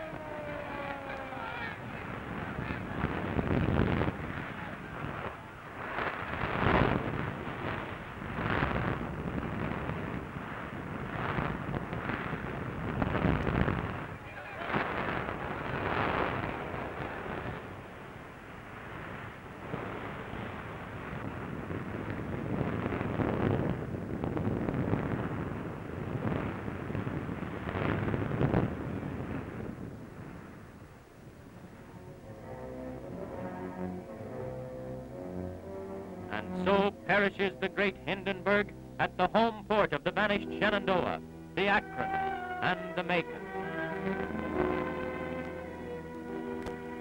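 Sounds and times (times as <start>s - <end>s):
rumble of fire: 0.0s - 47.0s
indistinct voices: 36.2s - 45.1s.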